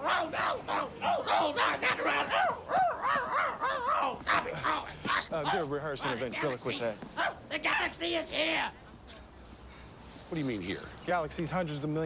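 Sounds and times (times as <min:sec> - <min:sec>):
dog crying in high strained voice: 0:00.0 - 0:05.3.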